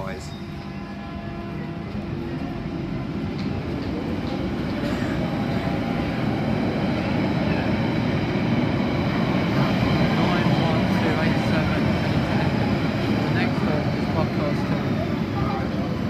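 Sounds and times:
underground train pulling out: 0.0 - 16.0.

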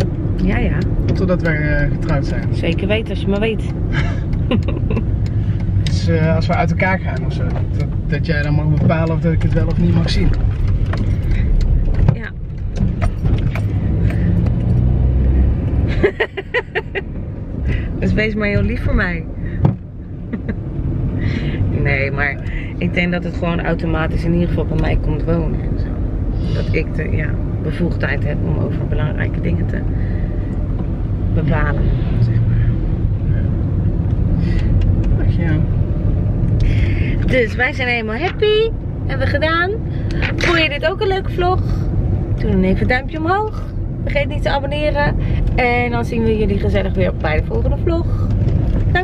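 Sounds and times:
car engine and road rumble: 0.0 - 49.0.

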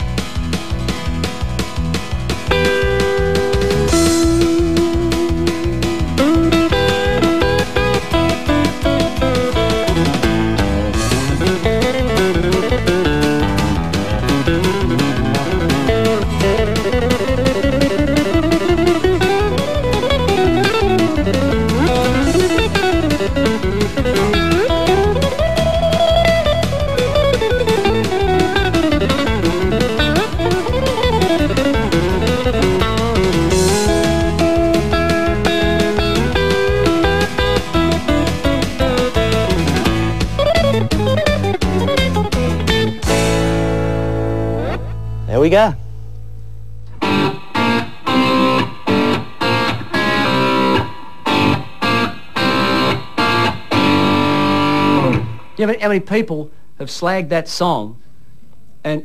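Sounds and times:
electric guitar fast country lead: 0.0 - 45.8, 46.9 - 56.3.

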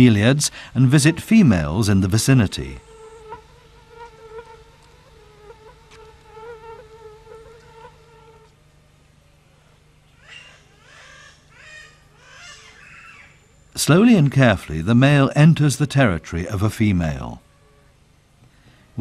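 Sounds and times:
flying insect buzzing: 0.8 - 8.6.

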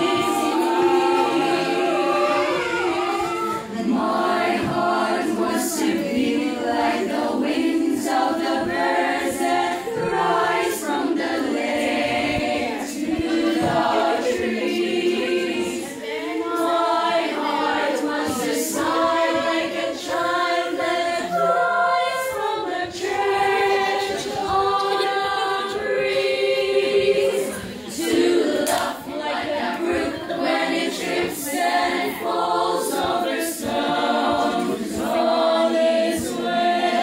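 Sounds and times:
children's choir singing: 0.0 - 37.0.

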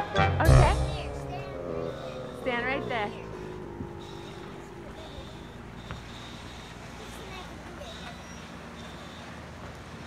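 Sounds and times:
motorboat engine humming: 0.0 - 8.8
faint high tone: 0.6 - 6.4.

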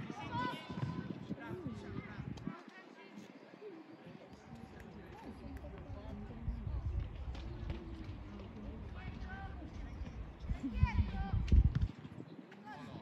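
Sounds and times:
low microphone rumble: 5.4 - 12.0.

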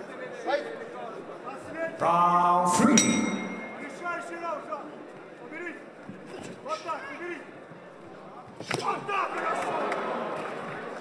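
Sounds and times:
man calling out: 2.0 - 3.8
hall noise: 2.0 - 4.3.

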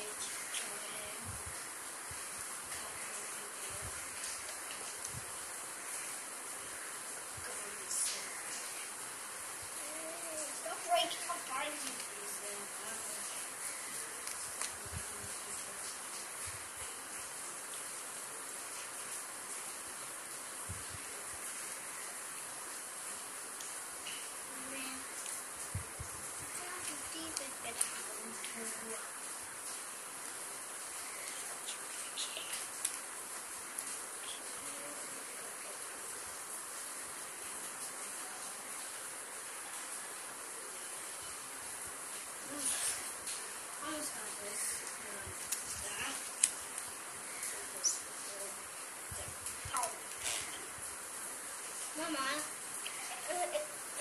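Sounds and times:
room noise hiss: 0.0 - 54.0.

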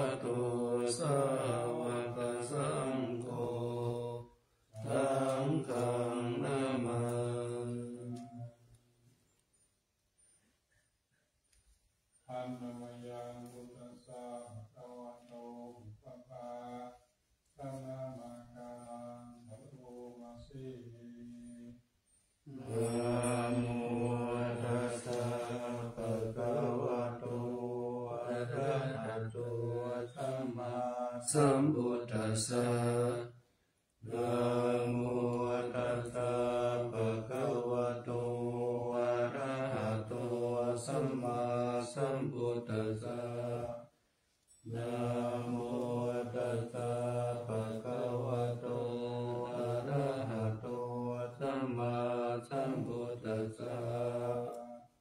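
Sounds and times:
monk chanting in monotone: 0.0 - 8.6, 12.3 - 21.9, 22.5 - 33.4, 34.0 - 43.9, 44.7 - 55.0.

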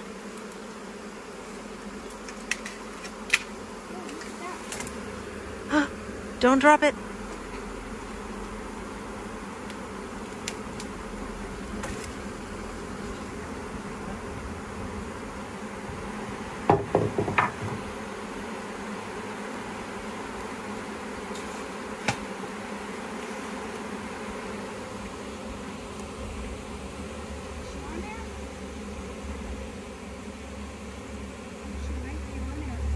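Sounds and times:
bee swarm buzzing: 0.0 - 32.9
knocks and rustling: 16.7 - 17.9.

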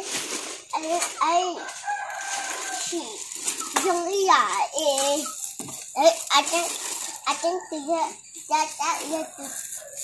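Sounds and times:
rooster crowing: 1.6 - 3.0.

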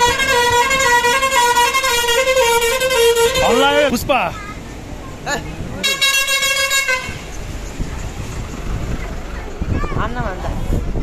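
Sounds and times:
bus musical horn playing a tune: 0.0 - 3.9, 5.8 - 7.3.

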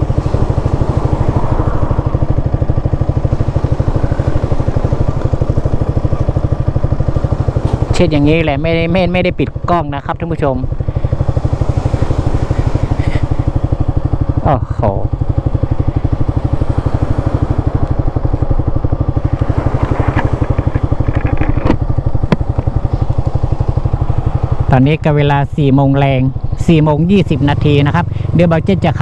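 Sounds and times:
motorcycle engine idling: 0.0 - 29.0.

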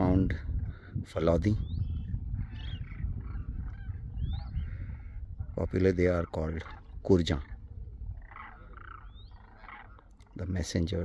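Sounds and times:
cranes croaking and honking: 1.6 - 11.0.

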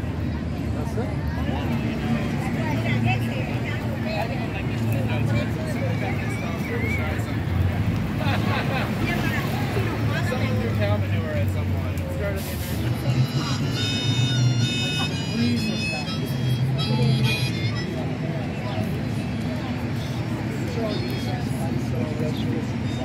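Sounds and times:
passersby talking: 0.0 - 23.0
street traffic: 0.0 - 23.0.

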